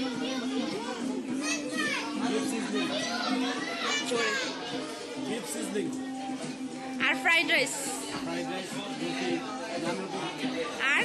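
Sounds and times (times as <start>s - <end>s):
children's voices: 0.0s - 5.8s
background music: 0.0s - 11.0s
people talking: 7.0s - 11.0s.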